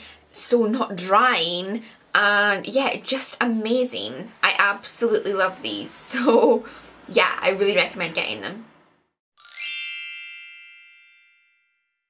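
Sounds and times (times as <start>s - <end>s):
bright chime ringing: 9.4s - 12.0s.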